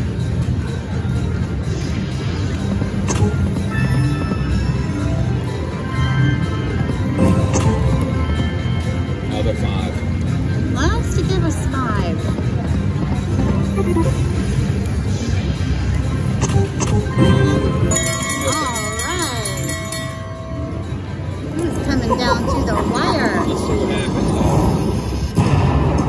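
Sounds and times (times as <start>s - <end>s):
slot machine game music: 0.8s - 11.7s, 12.5s - 24.0s
casino chatter: 4.5s - 25.0s.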